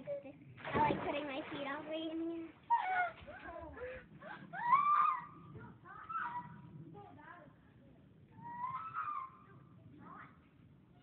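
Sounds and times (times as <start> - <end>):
child squealing: 4.6 - 5.3, 8.4 - 9.4.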